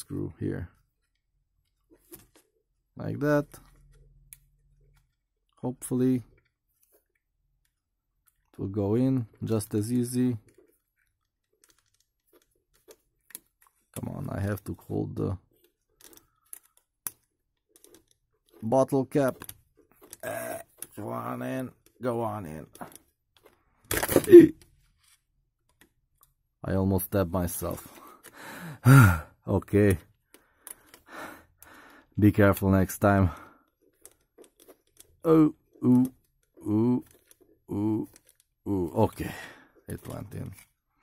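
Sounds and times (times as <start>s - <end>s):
faint handling clicks: 9.2s - 23.7s, 29.7s - 40.9s
person breathing out: 28.0s - 29.3s.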